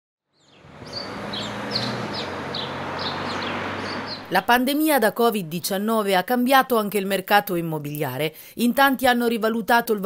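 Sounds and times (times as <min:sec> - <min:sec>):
small bird chirping: 0:00.3 - 0:04.4.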